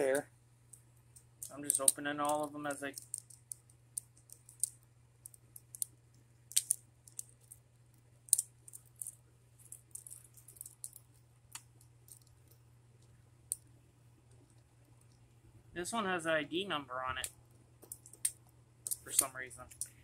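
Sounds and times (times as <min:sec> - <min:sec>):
plastic toy balls clicking: 0:00.7 - 0:07.6, 0:08.3 - 0:12.6, 0:17.8 - 0:20.0.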